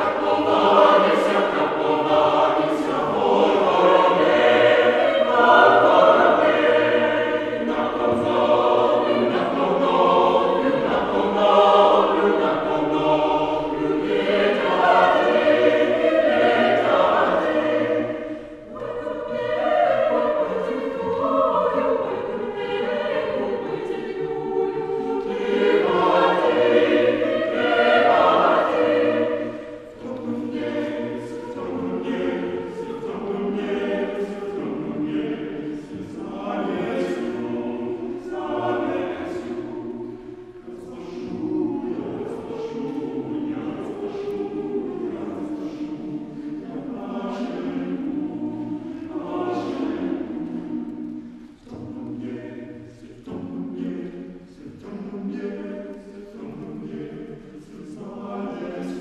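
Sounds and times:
mixed choir singing unaccompanied: 0.0s - 59.0s.

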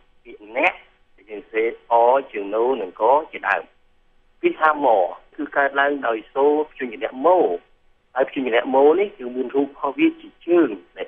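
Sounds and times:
person lecturing: 0.3s - 3.7s, 4.4s - 11.0s.

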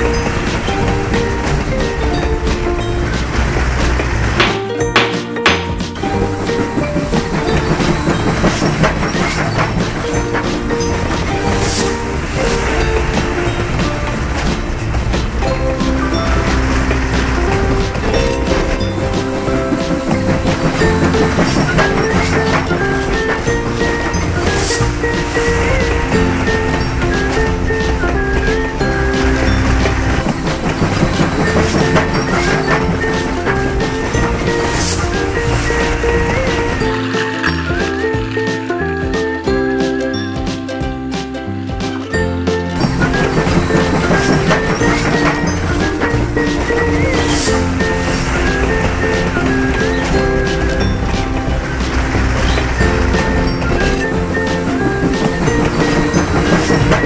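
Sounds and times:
toy train rattling on track: 0.0s - 40.5s, 41.8s - 57.0s
background music: 0.0s - 57.0s.

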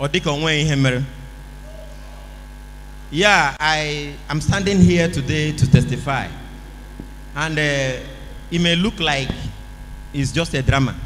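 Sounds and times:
electrical hum and buzz: 0.0s - 11.0s.

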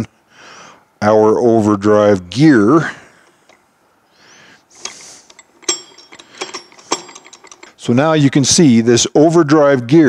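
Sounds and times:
soft metal scrape: 4.7s - 8.0s.

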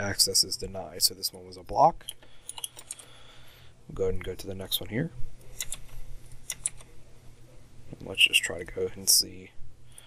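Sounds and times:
low steady hum: 0.0s - 10.0s
keyboard keys clicking: 5.6s - 6.9s.

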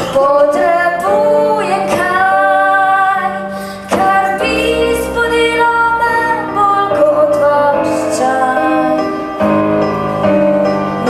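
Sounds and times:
young woman singing: 0.0s - 9.4s.

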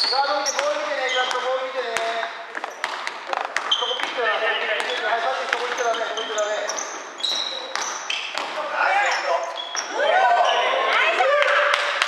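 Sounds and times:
basketball bouncing on wooden floor: 0.0s - 8.6s
sneaker squeaks: 0.0s - 11.0s
players calling out: 0.0s - 12.0s.

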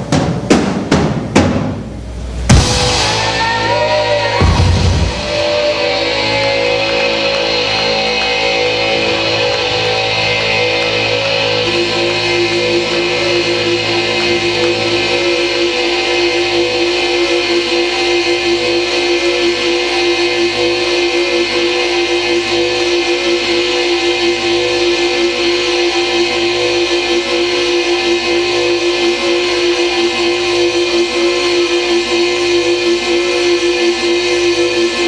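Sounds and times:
experimental electronic rock music: 2.4s - 35.0s.

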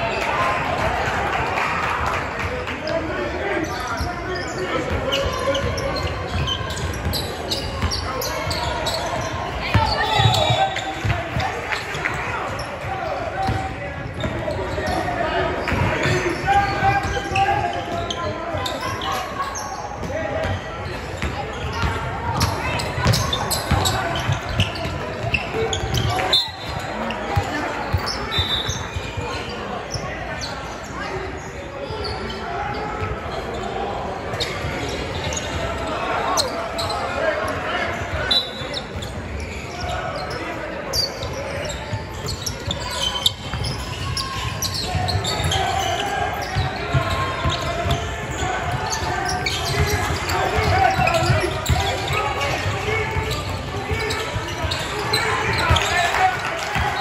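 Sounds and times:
indistinct shouts and chatter: 0.0s - 57.0s
basketball bouncing on wooden court: 21.2s - 26.8s, 42.2s - 55.9s.

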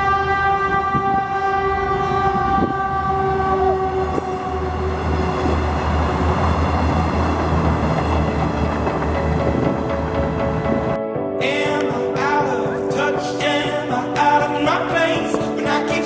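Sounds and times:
train horn: 0.0s - 7.2s
train rumbling past: 0.0s - 11.0s.

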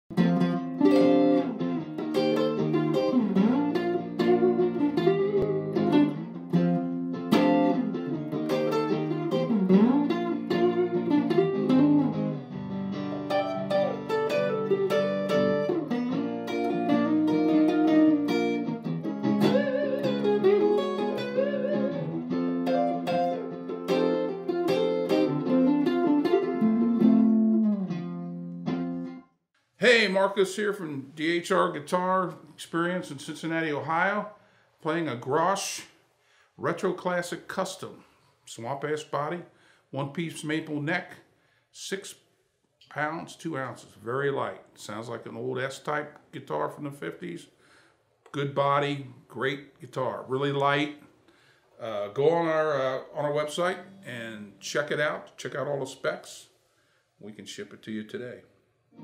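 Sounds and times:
electric guitar through amplifier: 0.1s - 29.2s.

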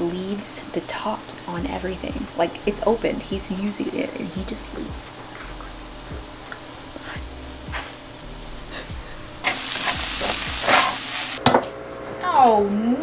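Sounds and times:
meat sizzling in a frying pan: 5.0s - 11.4s.

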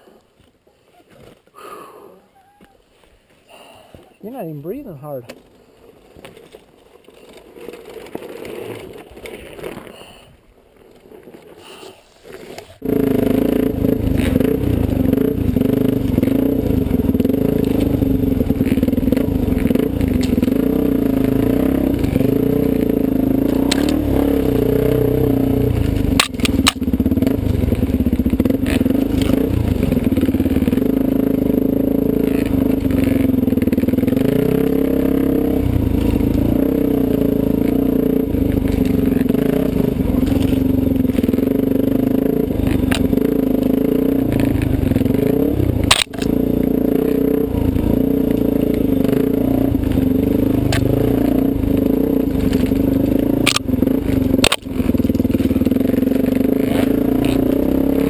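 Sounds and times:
dirt bike engine revving: 12.8s - 58.0s.

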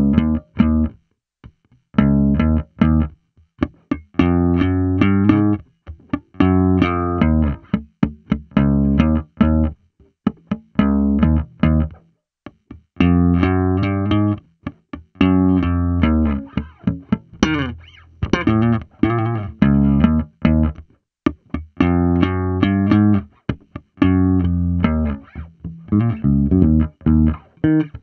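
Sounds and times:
slap electric bass: 15.2s - 23.3s, 24.0s - 28.0s.

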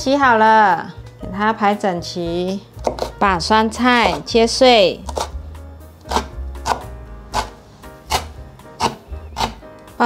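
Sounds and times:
cleaver chopping on wooden board: 2.8s - 3.2s, 5.1s - 5.3s, 6.1s - 9.6s.

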